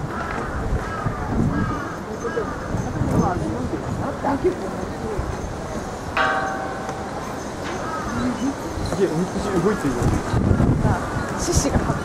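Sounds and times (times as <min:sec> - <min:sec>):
crowd murmur: 0:00.0 - 0:12.0
temple gong-bell ringing: 0:06.2 - 0:08.4.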